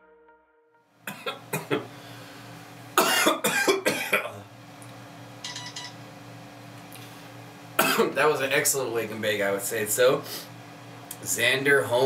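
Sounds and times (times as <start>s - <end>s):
man coughing: 1.1s - 1.9s, 3.0s - 4.4s, 7.8s - 8.2s.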